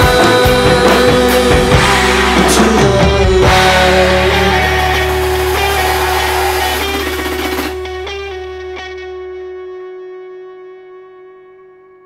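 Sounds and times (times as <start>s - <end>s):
distorted electric guitar chord: 3.4s - 9.6s.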